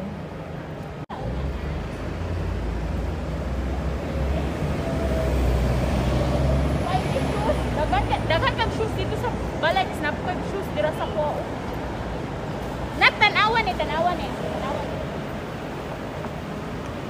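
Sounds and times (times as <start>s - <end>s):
faint voices of passers-by: 0.0s - 17.0s
low street rumble: 0.0s - 17.0s.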